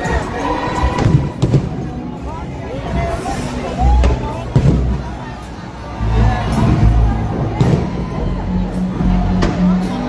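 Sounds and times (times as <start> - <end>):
crowd voices: 0.0 - 10.0
fireworks booming: 1.0 - 1.9, 7.5 - 8.1.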